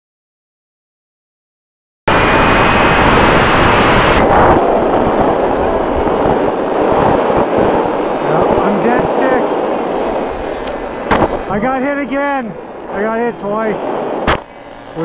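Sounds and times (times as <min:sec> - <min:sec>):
model airplane engines buzzing: 0:02.1 - 0:15.0
wind noise on microphone: 0:02.1 - 0:15.0.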